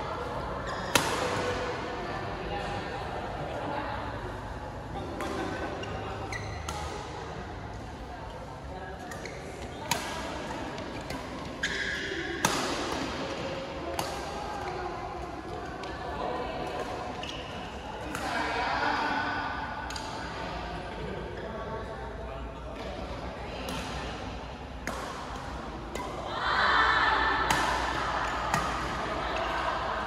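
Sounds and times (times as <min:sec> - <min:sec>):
voices in hall: 0:00.0 - 0:30.0
shoes squeaking on court floor: 0:05.8 - 0:06.7
rackets hitting shuttlecock: 0:09.9 - 0:13.3, 0:27.4 - 0:29.9.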